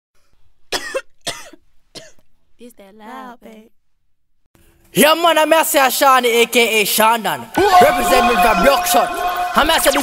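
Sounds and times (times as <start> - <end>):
person coughing: 0.7 - 2.2.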